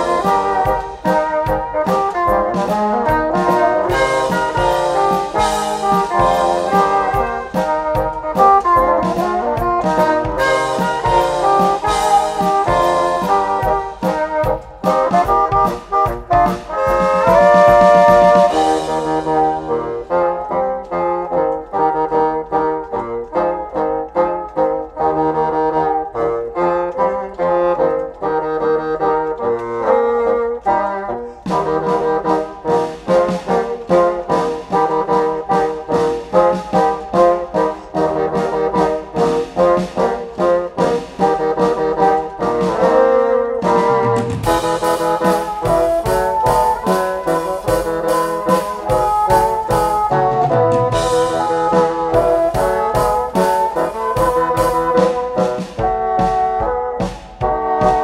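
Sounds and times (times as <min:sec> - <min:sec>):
bassoon quartet playing: 0:00.0 - 0:58.0.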